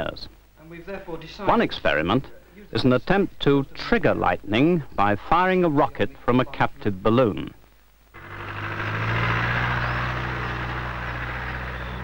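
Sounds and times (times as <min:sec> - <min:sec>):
engine running with hiss: 0:08.2 - 0:12.0.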